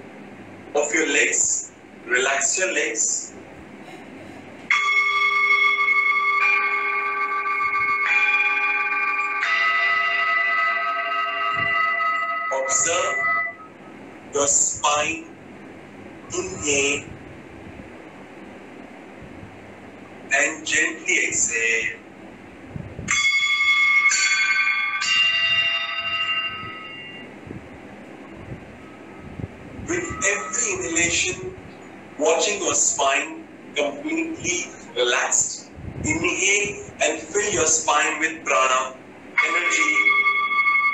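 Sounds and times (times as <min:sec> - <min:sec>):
singing bowls ringing: 0:04.7 - 0:13.8, 0:23.1 - 0:27.3, 0:29.9 - 0:31.2, 0:39.4 - 0:40.9.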